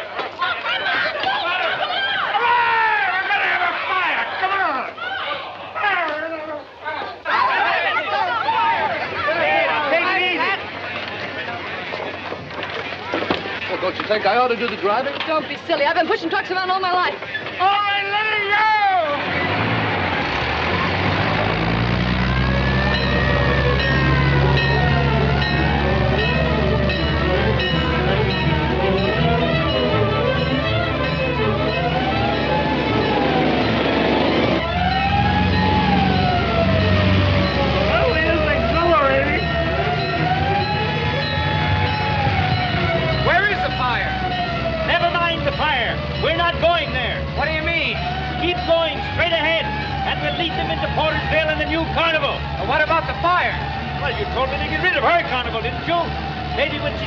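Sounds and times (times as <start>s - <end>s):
truck engine rumble: 7.9s - 57.0s
fire truck siren wailing: 16.4s - 57.0s.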